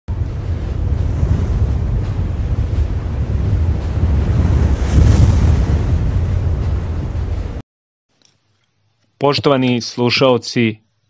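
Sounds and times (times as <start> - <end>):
rough low rumble: 0.1 - 7.6
whoosh: 0.2 - 7.6.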